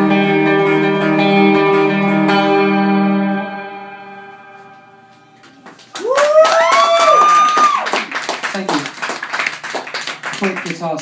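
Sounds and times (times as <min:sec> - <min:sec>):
electric guitar chord ringing: 0:00.0 - 0:05.5
audience clapping: 0:05.4 - 0:11.0
voices cheering: 0:06.0 - 0:08.1.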